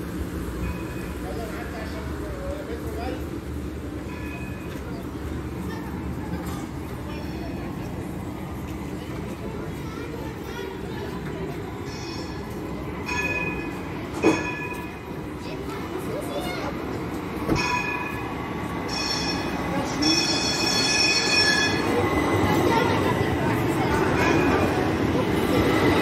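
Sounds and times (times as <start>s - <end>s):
tram rumbling on rails: 0.0s - 26.0s.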